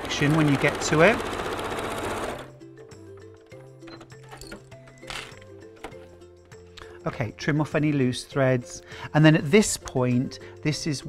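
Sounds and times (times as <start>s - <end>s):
electric sewing machine stitching: 0.0s - 2.6s
soft background music: 0.0s - 11.0s.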